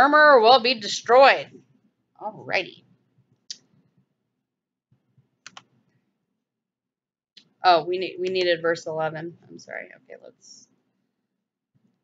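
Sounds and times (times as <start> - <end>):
computer mouse clicks: 5.4 - 6.0.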